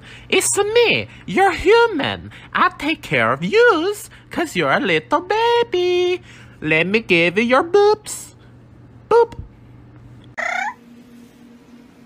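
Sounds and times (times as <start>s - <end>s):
parrot squeaky chirp: 10.4s - 10.8s.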